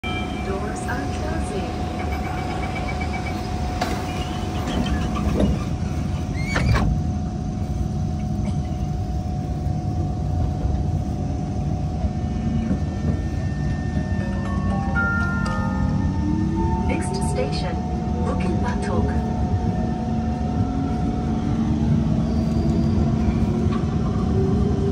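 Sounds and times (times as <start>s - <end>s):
stopped train humming: 0.0s - 24.9s
rising whine: 9.0s - 24.9s.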